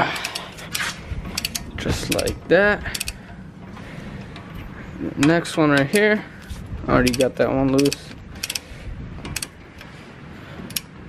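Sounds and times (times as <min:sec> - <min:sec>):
torque wrench ratcheting clicks: 0:00.1 - 0:03.2, 0:05.2 - 0:06.2, 0:06.9 - 0:09.9, 0:10.7 - 0:11.0.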